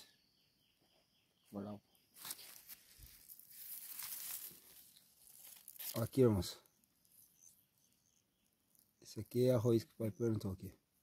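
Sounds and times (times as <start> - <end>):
leaves rustling against phone: 2.1 - 7.5.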